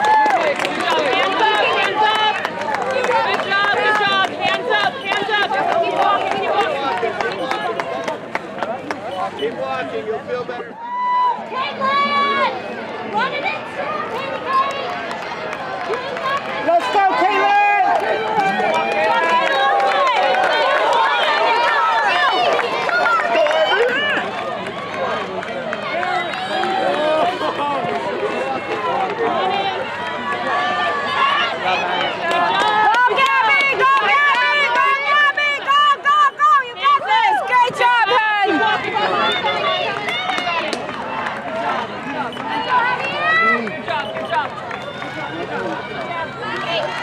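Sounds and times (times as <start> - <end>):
crowd shouting and cheering: 0.0 - 47.0.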